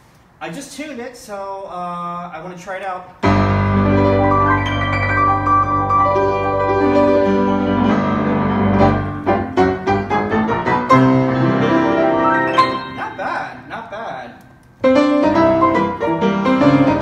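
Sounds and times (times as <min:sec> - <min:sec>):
upright piano playing: 0:03.2 - 0:13.8, 0:14.8 - 0:17.0.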